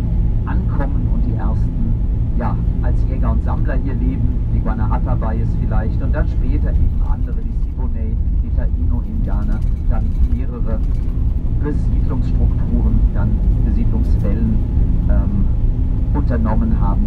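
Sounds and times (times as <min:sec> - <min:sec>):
bus rumble from inside: 0:00.0 - 0:17.0
person speaking: 0:00.5 - 0:10.9, 0:11.6 - 0:15.6.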